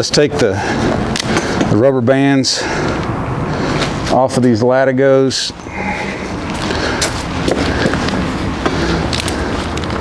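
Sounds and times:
low background rumble: 0:05.5 - 0:10.0.

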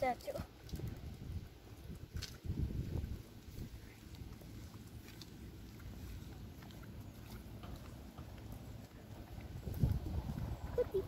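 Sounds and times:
wind on microphone: 0:00.6 - 0:03.9, 0:09.4 - 0:11.0
footsteps on asphalt: 0:02.0 - 0:10.8.

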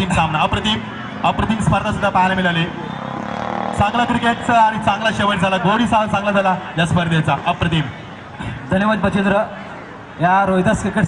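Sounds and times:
man talking over loudspeaker: 0:00.0 - 0:03.1, 0:03.7 - 0:11.0.

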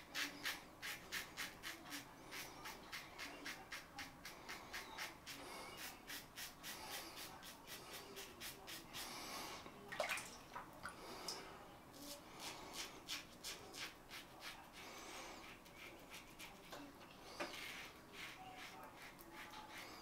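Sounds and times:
razor scraping stubble: 0:00.0 - 0:09.3, 0:12.0 - 0:20.0.

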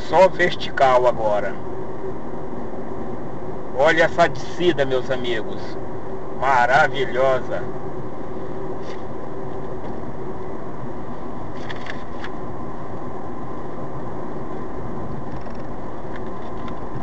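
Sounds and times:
car road and engine noise: 0:00.0 - 0:17.0.

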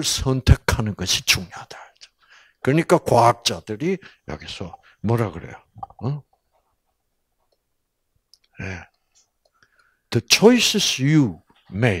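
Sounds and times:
person speaking: 0:02.6 - 0:06.4.

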